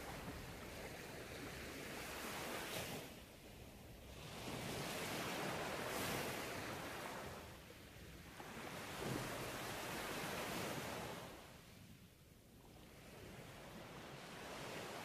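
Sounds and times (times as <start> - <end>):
ocean waves washing ashore: 0.0 - 11.8, 12.7 - 15.0.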